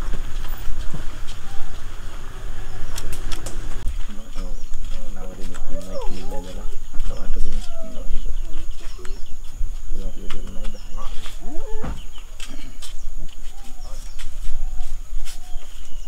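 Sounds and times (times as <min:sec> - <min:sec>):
steady low rumble: 0:00.0 - 0:15.2
people talking: 0:03.8 - 0:12.9, 0:13.5 - 0:15.6.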